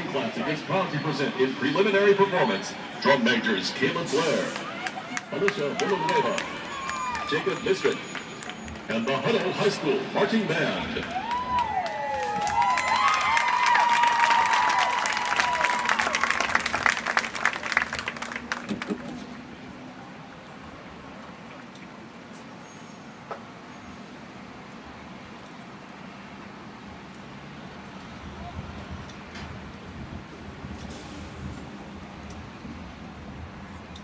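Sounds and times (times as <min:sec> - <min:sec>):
open-air crowd murmur: 0:00.0 - 0:25.2
stadium crowd applauding and cheering: 0:03.6 - 0:19.2.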